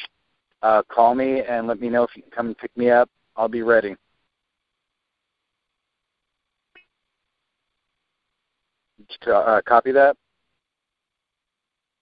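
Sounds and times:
faint blip: 6.7s - 7.0s.

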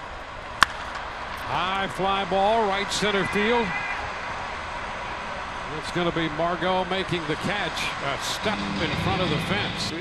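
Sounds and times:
ballpark ambience: 0.0s - 10.0s
man commentating: 5.7s - 10.0s.

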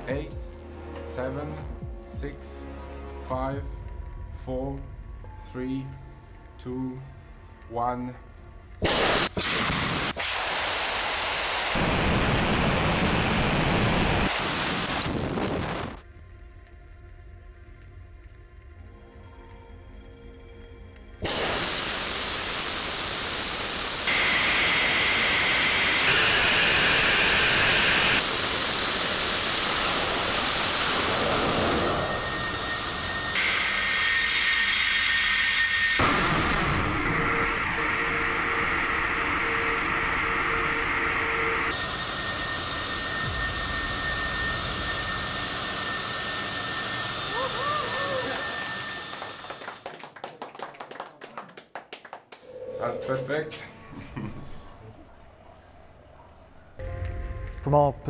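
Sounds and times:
rocket motor hissing rush: 8.8s - 16.0s, 21.2s - 36.0s, 41.7s - 49.8s.

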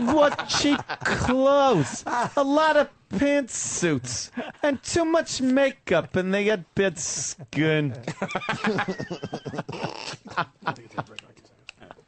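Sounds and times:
men laughing: 0.0s - 2.6s, 4.3s - 4.8s, 7.1s - 11.2s, 11.8s - 12.0s
men speaking: 0.0s - 12.0s.

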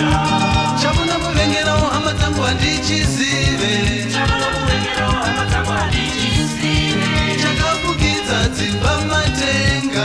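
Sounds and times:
instrumental band music with guitars: 0.0s - 10.0s.

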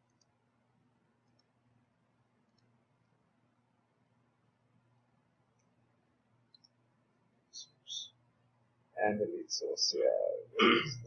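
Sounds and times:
faint computer mouse clicks: 0.0s - 0.3s, 1.2s - 1.5s, 2.5s - 2.7s, 6.5s - 6.8s
faint low hum: 0.0s - 11.0s.

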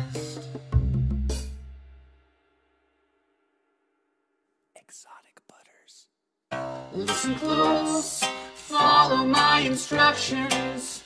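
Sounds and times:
breathy whisper: 4.8s - 6.2s.

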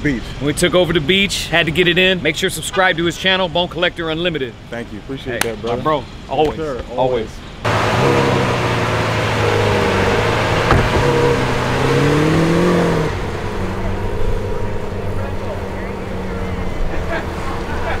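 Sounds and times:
car engine revving: 7.7s - 18.0s
sharp knock: 10.6s - 11.2s.

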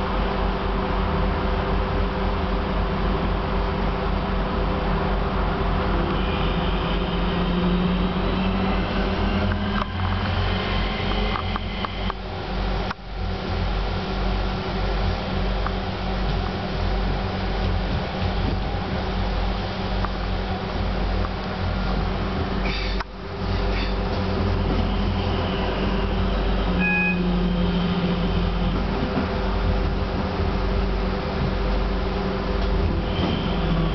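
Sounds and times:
train interior hum: 0.0s - 33.9s
wheel-on-rail rolling noise: 6.9s - 33.9s
high beep: 26.8s - 27.3s.

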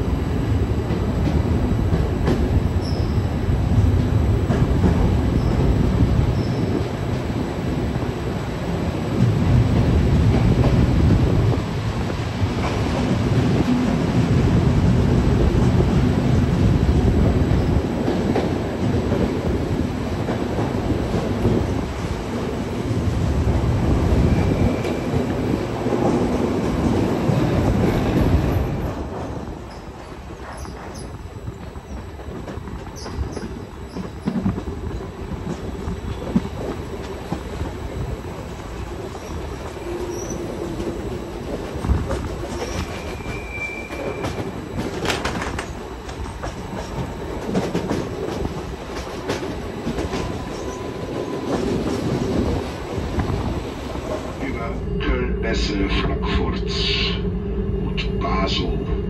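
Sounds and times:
train wheels rumbling and clicking: 0.0s - 54.8s
high wheel squeals: 42.6s - 44.4s.

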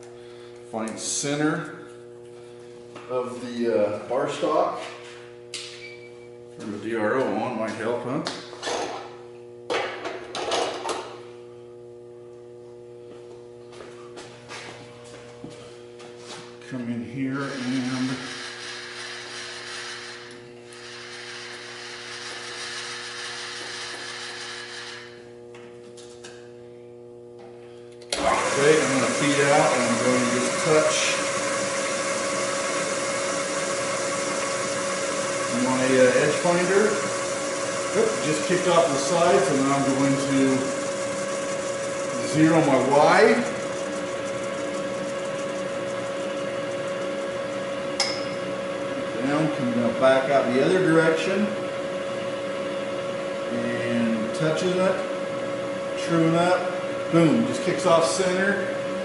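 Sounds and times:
steady electrical hum: 0.0s - 59.0s
milling spindle whine: 16.8s - 25.6s, 28.1s - 55.0s.

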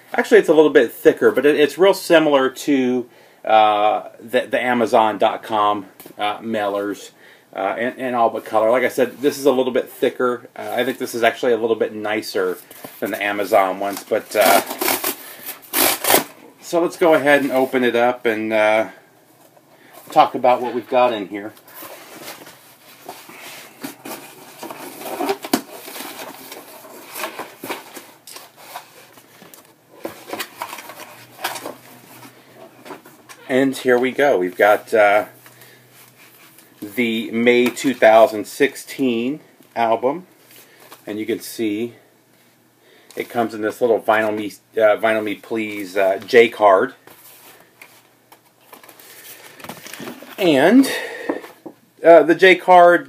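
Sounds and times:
cardboard rustling and scraping: 20.0s - 33.2s.

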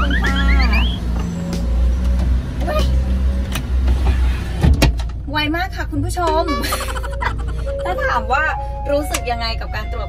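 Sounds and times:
van engine idling: 0.0s - 10.0s.

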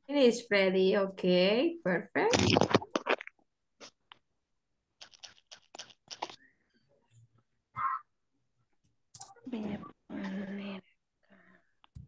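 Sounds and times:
faint clicks and rustles: 5.0s - 7.5s.

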